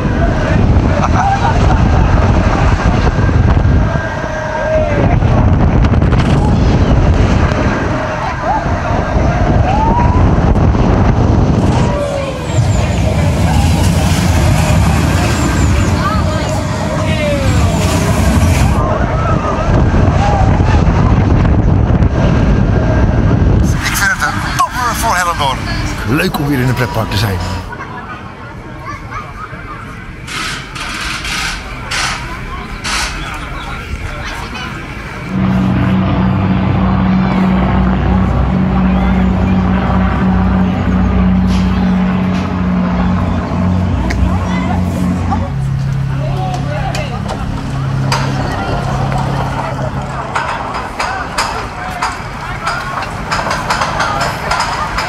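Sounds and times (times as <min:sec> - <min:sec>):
wind buffeting microphone: 0:00.0 - 0:26.2
amusement ride rumbling: 0:00.0 - 0:55.0
man talking: 0:23.7 - 0:27.7.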